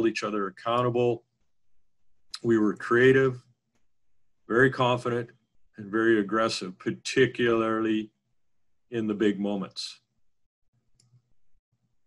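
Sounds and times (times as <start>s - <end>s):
faint click: 10.9s - 11.3s.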